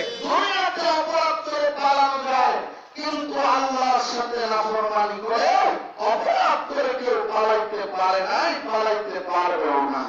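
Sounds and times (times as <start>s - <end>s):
man preaching into a microphone: 0.0s - 10.0s.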